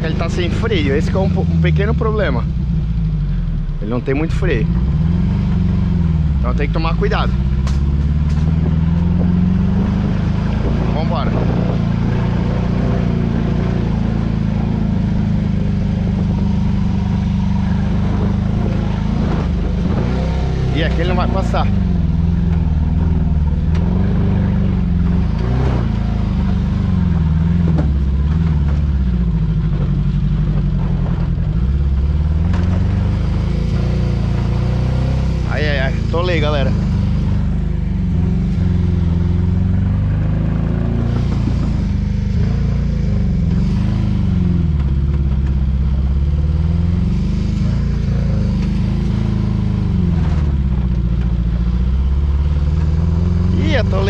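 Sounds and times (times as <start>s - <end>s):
car engine misfiring uphill: 0.0s - 54.0s.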